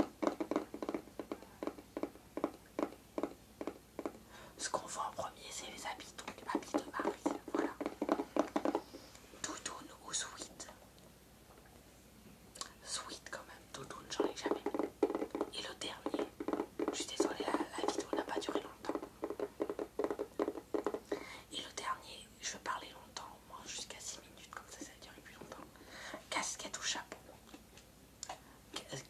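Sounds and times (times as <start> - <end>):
fingertips tapping on a box: 0.0 - 10.4, 13.8 - 21.9
soft whispering: 4.3 - 8.0, 8.6 - 11.0, 12.6 - 14.8, 15.5 - 19.0, 21.1 - 27.6, 28.2 - 29.0.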